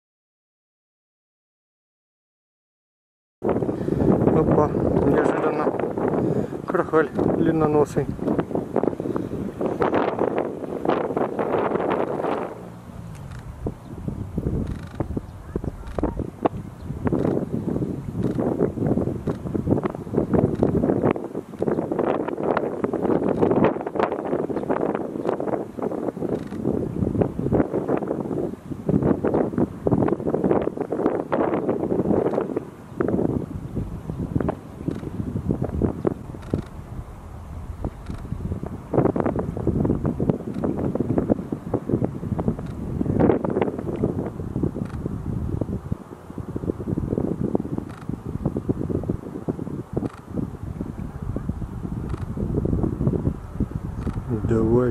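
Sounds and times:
wind buffeting microphone: 0:03.4 - 0:54.9.

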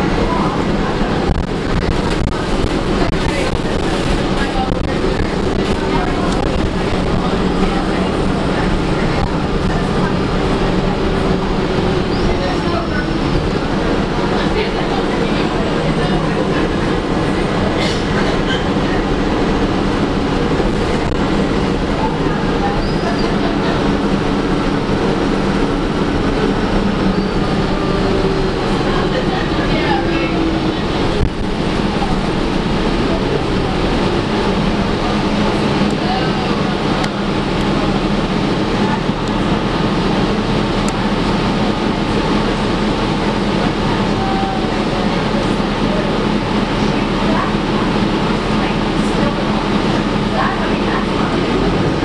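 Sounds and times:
bus engine humming: 0:00.0 - 0:52.0
road noise: 0:00.0 - 0:52.0.

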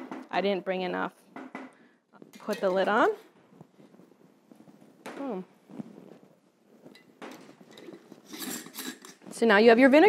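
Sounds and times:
jar lid threads scraping: 0:07.0 - 0:09.3.

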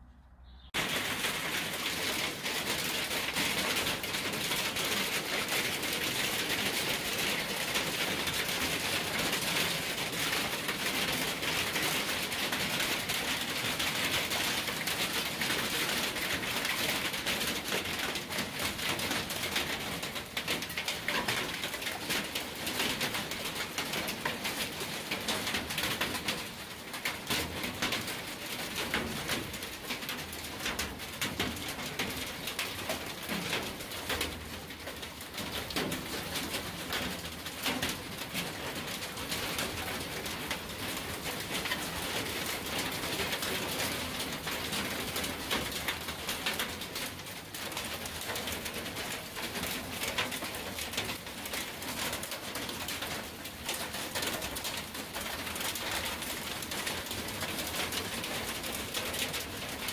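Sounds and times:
rain and hail pattering: 0:00.8 - 0:59.9.

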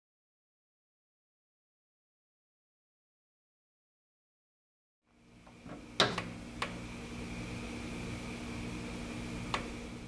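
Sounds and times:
milling machine hum: 0:05.2 - 0:10.0.

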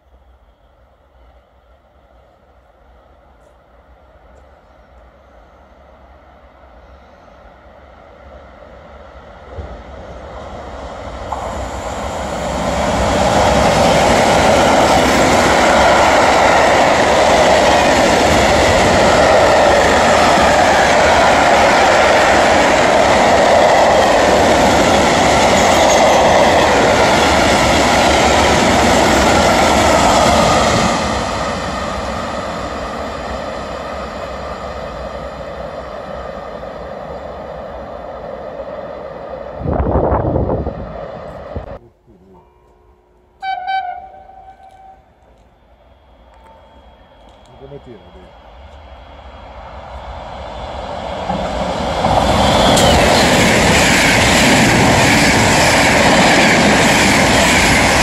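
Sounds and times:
freight train passing: 0:00.0 - 0:58.0.

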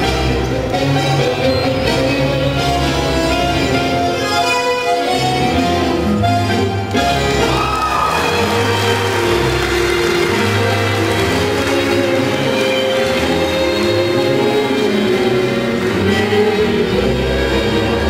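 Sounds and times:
bandoneon: 0:00.0 - 0:18.0
bowed violins: 0:00.0 - 0:18.0.

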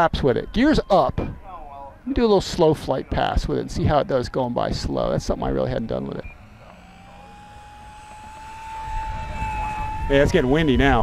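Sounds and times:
wind rumble on microphone: 0:00.0 - 0:01.6, 0:08.8 - 0:11.0
model plane motor whining: 0:05.1 - 0:11.0.

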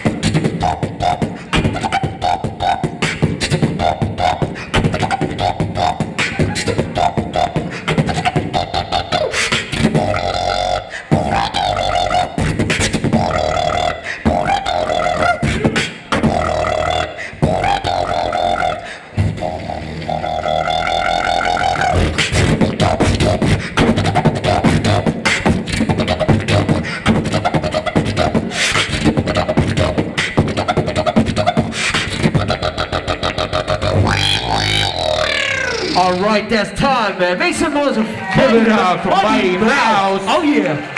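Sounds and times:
beatboxing: 0:00.0 - 0:37.8.

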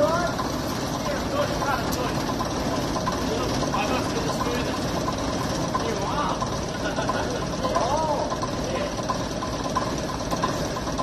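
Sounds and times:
diesel bus engine idling: 0:00.0 - 0:11.0
diesel knock ticking: 0:00.0 - 0:11.0.

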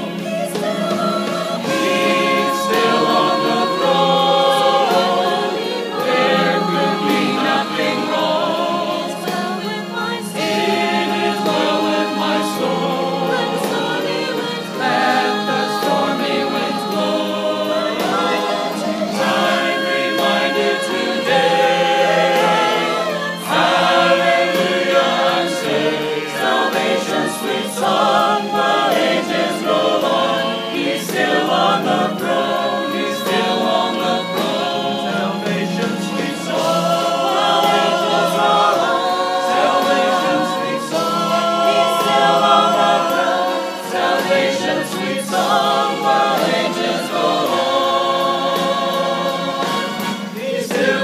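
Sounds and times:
mixed choir singing: 0:00.0 - 0:51.0.

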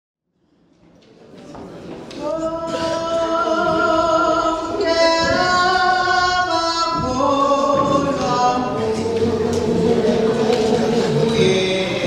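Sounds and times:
church choir singing a hymn: 0:02.2 - 0:12.0.

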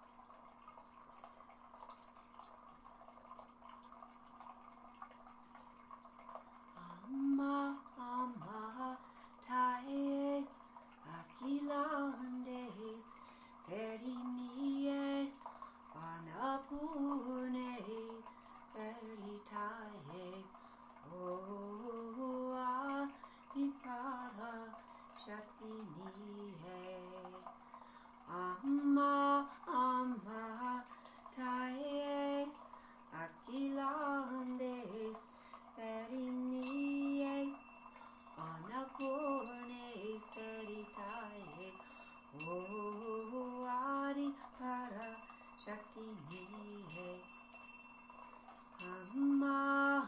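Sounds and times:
woman singing devotional song: 0:06.8 - 0:27.5, 0:28.2 - 0:37.7, 0:38.4 - 0:47.6, 0:48.8 - 0:50.0
small chime struck: 0:36.6 - 0:43.5, 0:45.0 - 0:49.6.

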